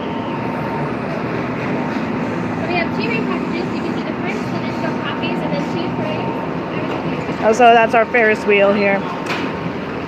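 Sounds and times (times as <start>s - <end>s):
steady hum: 0.0s - 10.0s
indistinct background voices: 2.4s - 9.1s.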